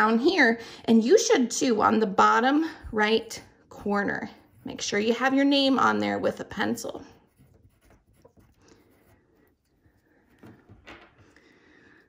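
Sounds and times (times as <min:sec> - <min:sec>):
pencil scratching on paper: 0:03.8 - 0:05.8, 0:06.6 - 0:10.5.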